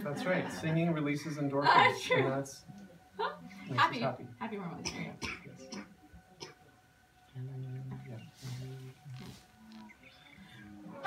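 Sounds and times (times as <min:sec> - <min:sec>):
breathy hiss: 0:08.2 - 0:11.0.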